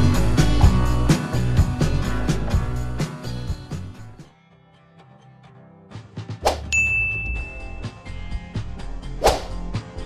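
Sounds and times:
bright ringing ding: 0:06.7 - 0:07.9
swish-like hit: 0:09.2 - 0:09.6.

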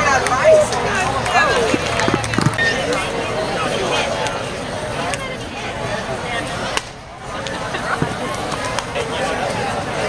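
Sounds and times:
crowd chatting: 0:00.0 - 0:10.0.

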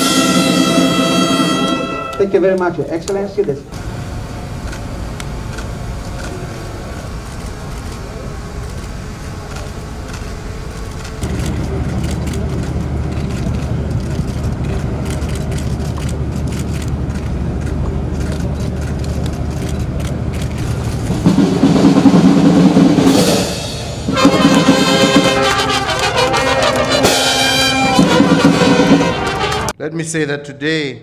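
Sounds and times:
brass band playing: 0:00.0 - 0:02.8, 0:20.7 - 0:29.8
engine humming: 0:00.0 - 0:29.8.

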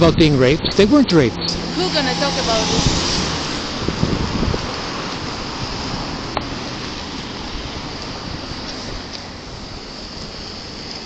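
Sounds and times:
street traffic: 0:00.0 - 0:11.0
wind rushing on microphone: 0:00.0 - 0:11.0.

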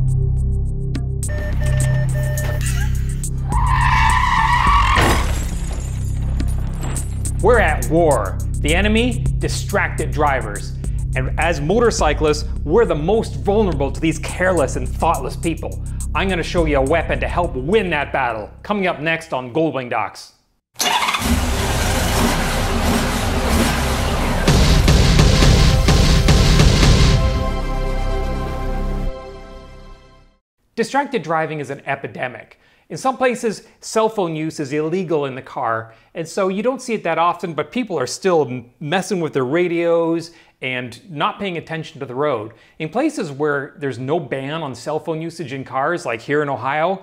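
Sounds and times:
background music: 0:00.0 - 0:05.0, 0:06.4 - 0:18.6, 0:22.1 - 0:30.4
car warning beeps: 0:01.3 - 0:03.0
tires screeching: 0:03.3 - 0:05.5, 0:20.8 - 0:25.4
car crash: 0:03.7 - 0:07.3, 0:20.8 - 0:26.3
motorcycle engine rumbling: 0:20.8 - 0:26.3.

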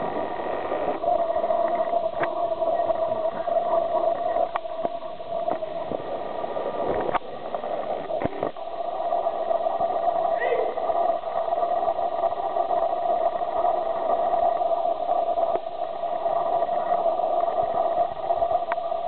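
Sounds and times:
steady hum: 0:00.0 - 0:19.0.

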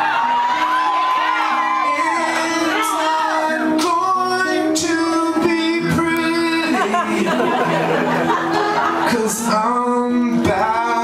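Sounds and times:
strummed acoustic guitar: 0:00.1 - 0:11.0
man singing: 0:01.5 - 0:07.9, 0:08.8 - 0:11.0.

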